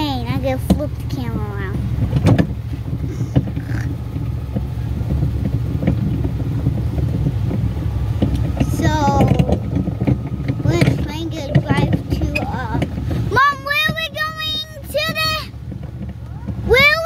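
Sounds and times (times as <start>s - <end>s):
plastic barrel cars clattering: 0.0s - 17.0s
small tractor engine running: 0.0s - 17.0s.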